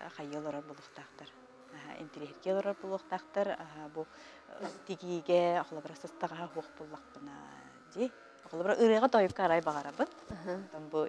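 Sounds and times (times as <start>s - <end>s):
jaw harps buzzing drone: 0.0s - 11.0s.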